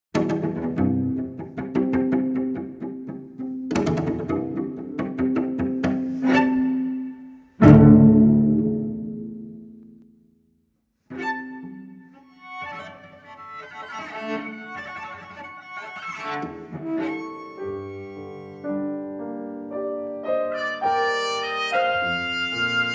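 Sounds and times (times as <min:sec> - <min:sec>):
solo cello playing: 0:00.2 - 0:09.8, 0:11.1 - 0:22.9.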